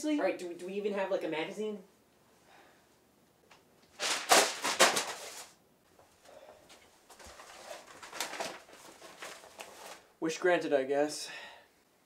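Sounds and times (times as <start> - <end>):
magazines rustling and sliding: 3.9 - 5.6, 6.7 - 10.1
paper crackles: 3.9 - 5.6, 7.1 - 10.1.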